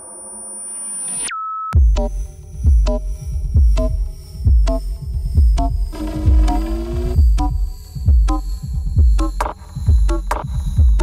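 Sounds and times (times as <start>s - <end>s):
deep kick and bass beat: 1.8s - 11.0s.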